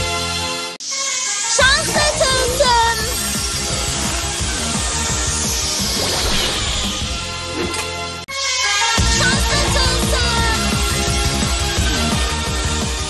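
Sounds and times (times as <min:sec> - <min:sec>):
electronic music with steady beat: 0:00.8 - 0:06.0
falling sweep: 0:03.8 - 0:08.2
sparkling rising chimes: 0:05.4 - 0:07.5.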